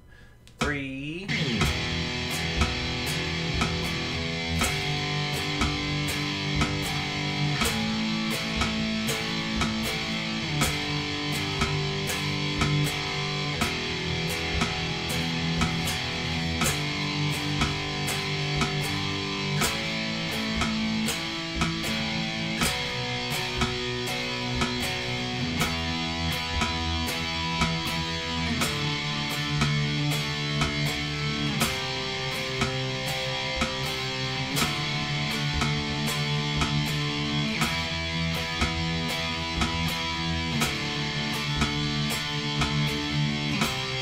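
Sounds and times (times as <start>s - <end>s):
backing track: 0.0s - 44.0s
sharp percussive hits: 0.6s - 44.0s
electric guitar power chords: 1.1s - 44.0s.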